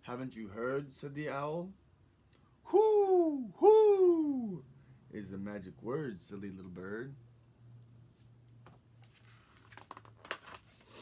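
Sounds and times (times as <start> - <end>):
book page turning: 9.0 - 11.0.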